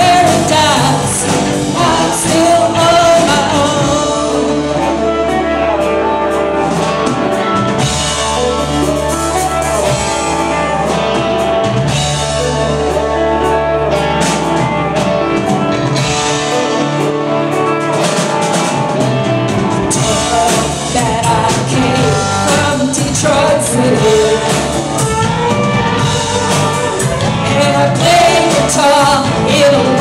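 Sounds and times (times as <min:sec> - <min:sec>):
live rock band playing: 0:00.0 - 0:30.0.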